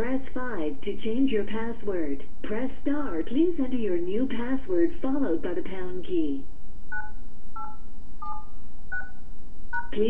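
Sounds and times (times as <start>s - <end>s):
phone keypad tones: 6.9s - 9.2s.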